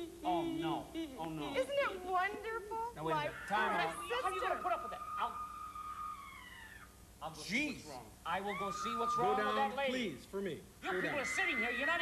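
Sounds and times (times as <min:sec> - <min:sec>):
woman wailing high-pitched: 0:03.1 - 0:06.8.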